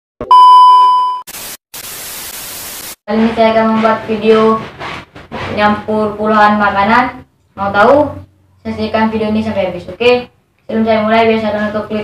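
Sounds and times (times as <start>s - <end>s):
high beep: 0.2s - 1.3s
television static hiss: 1.3s - 3.0s.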